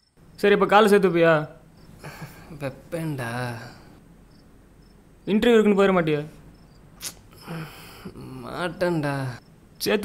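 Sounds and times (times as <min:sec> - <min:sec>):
cricket chirps: 0:00.0 - 0:02.6, 0:03.4 - 0:05.1, 0:06.5 - 0:10.0
person speaking: 0:00.4 - 0:04.0, 0:07.0 - 0:10.0.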